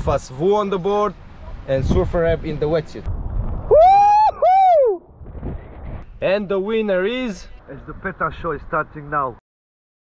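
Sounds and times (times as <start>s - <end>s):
person whooping: 3.7s - 5.1s.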